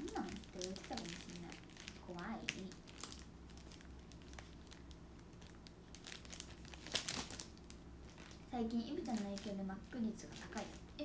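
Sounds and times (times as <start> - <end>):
crinkling handling noise: 0.0 - 11.0.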